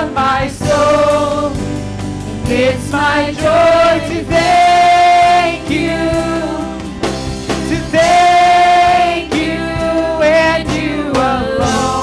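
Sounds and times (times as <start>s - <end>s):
voices singing together: 0.0s - 1.8s, 2.4s - 12.0s
acoustic guitar: 0.0s - 12.0s
bass guitar: 0.0s - 12.0s
keyboard: 0.0s - 12.0s.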